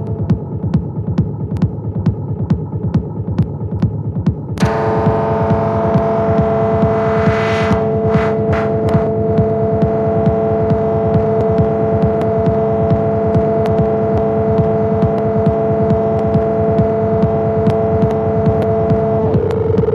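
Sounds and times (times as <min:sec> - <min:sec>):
kick drum pattern: 0:00.0 - 0:19.9
sustained synth drone: 0:00.0 - 0:19.9
ticking hi-hats: 0:00.0 - 0:19.9
filtered noise sweep: 0:04.6 - 0:19.9.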